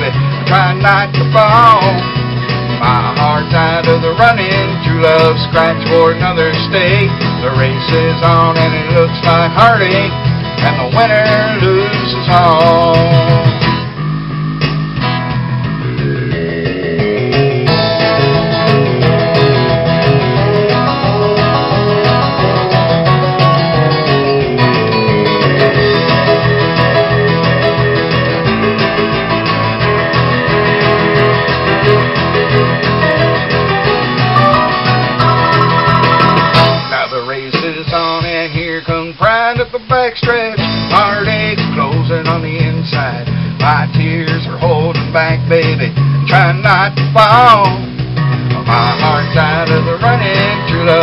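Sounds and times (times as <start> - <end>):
strummed acoustic guitar: 0.0 - 37.8
person singing: 34.4 - 37.7.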